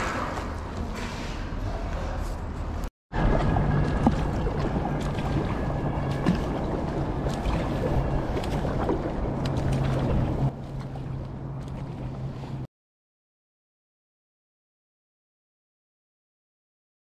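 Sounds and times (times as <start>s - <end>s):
low steady hum: 2.4s - 12.7s
water splashing around kayak: 3.1s - 12.7s.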